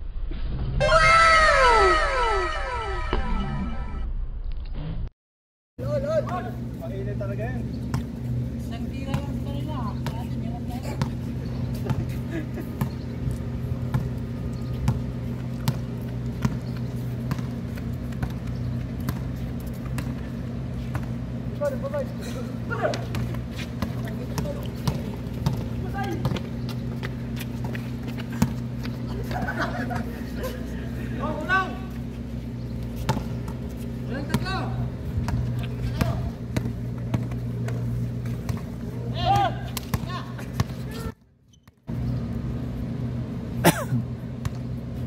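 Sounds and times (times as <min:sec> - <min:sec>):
players' voices and shouts: 0:00.8 - 0:03.1, 0:38.9 - 0:41.1
steady low hum: 0:05.8 - 0:41.2, 0:41.9 - 0:45.0
basketball bouncing on hard court: 0:14.8 - 0:20.2, 0:22.9 - 0:27.8, 0:33.0 - 0:33.6, 0:35.2 - 0:38.7.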